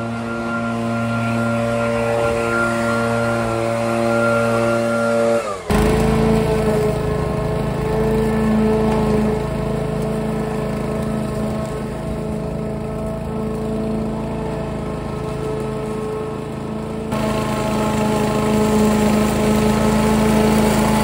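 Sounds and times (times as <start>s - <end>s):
lawn mower engine cutting grass: 0.0s - 21.0s.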